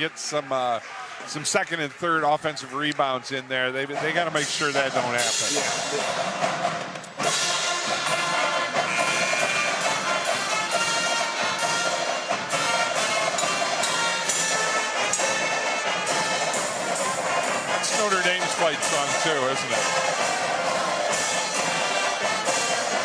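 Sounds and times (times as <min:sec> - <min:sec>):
drums keeping beat: 0:03.3 - 0:23.0
brass horns playing tune: 0:07.2 - 0:23.0.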